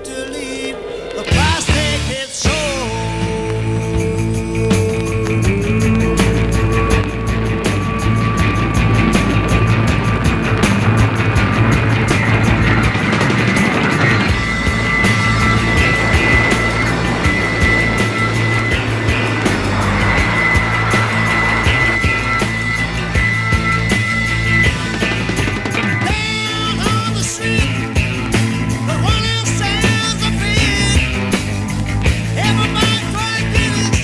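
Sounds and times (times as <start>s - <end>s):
hard rock instrumental from vinyl: 0.0s - 34.0s.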